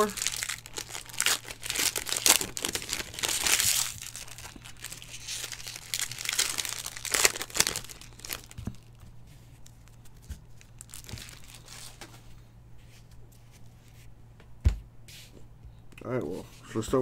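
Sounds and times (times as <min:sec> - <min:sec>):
plastic wrapper crinkling: 0:00.0 - 0:12.1.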